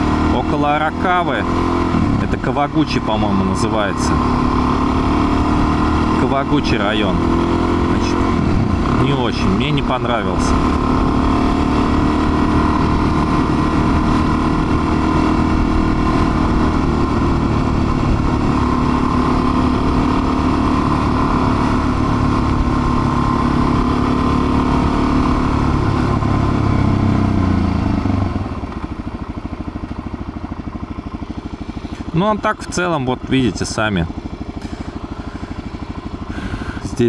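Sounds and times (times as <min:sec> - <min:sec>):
motorcycle engine running: 0:00.0 - 0:37.0
road and wind noise: 0:00.0 - 0:37.0.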